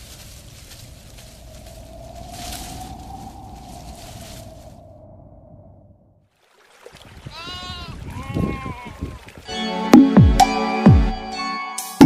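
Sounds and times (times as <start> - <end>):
low rumble: 0.0 - 6.2
livestock bleating: 7.3 - 9.3.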